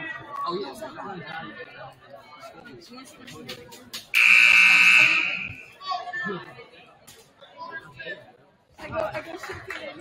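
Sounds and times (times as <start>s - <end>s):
crowd chatter: 0.0s - 10.0s
scoreboard buzzer: 4.2s - 5.7s.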